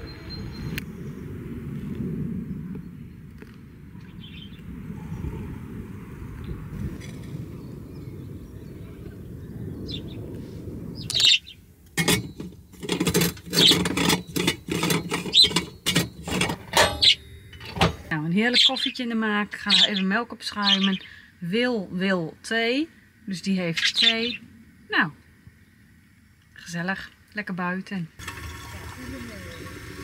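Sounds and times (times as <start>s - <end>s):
metallic clicks and scrapes of coffee maker: 11.9s - 18.1s.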